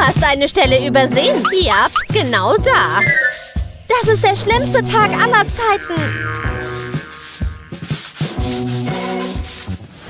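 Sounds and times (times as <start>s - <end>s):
background music: 0.0s - 10.0s
mop scrubbing floor: 0.0s - 10.0s.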